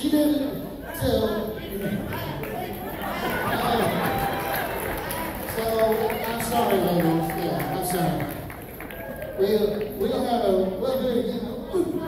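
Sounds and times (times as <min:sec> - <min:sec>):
chatter of many voices: 0:00.0 - 0:12.0.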